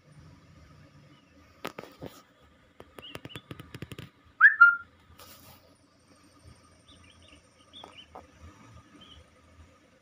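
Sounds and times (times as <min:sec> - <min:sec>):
small chirps: 0:02.8 - 0:05.7, 0:06.8 - 0:08.3
high rising whistle: 0:04.4 - 0:04.9.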